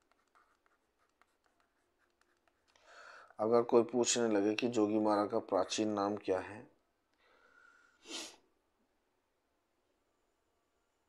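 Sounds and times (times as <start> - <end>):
stylus scratching on pen tablet: 0.0 - 2.9.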